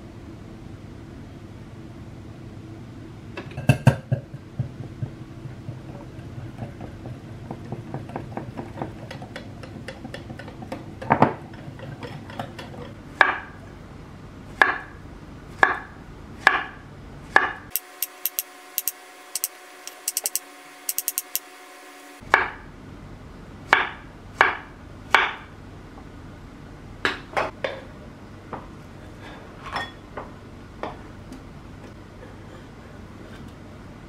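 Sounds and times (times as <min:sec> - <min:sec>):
thin quick clicks: 0:17.7 - 0:21.4
whisk ticking against glass bowl: 0:17.9 - 0:21.4.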